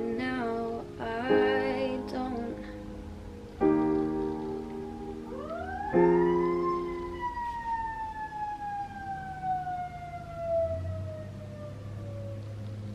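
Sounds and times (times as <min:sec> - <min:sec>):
electric keyboard chord: 0:00.0 - 0:08.7
siren wail: 0:02.9 - 0:12.9.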